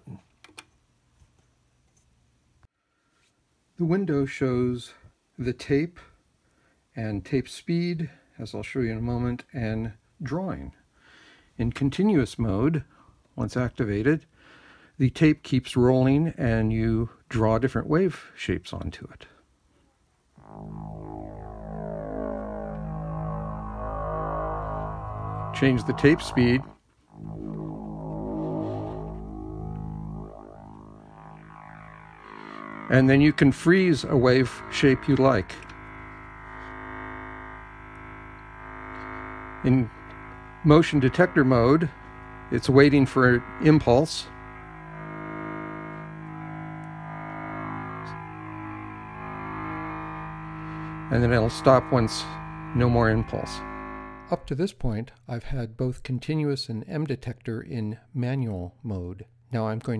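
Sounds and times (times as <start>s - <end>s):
low synth drone: 20.4s - 54.3s.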